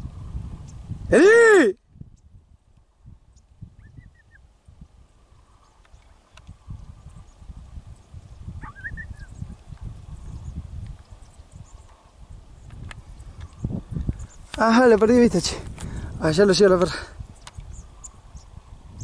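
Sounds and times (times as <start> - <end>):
wind buffeting microphone: 0.0 - 19.0
bird chirping: 3.3 - 4.5, 5.4 - 9.6.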